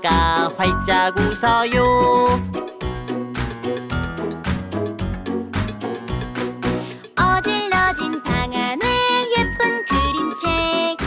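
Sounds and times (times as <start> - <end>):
children's song singing: 0.0 - 2.4, 7.2 - 11.0
tinkling bell-like accompaniment: 0.6 - 2.8.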